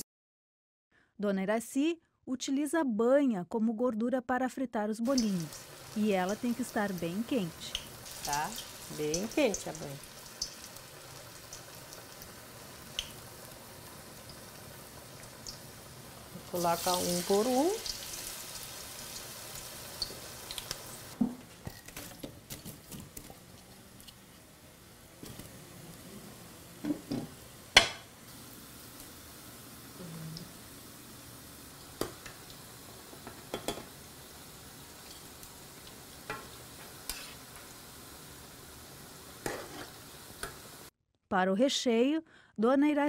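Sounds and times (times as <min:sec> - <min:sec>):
food deep-frying sizzle: 0:05.0 - 0:40.9.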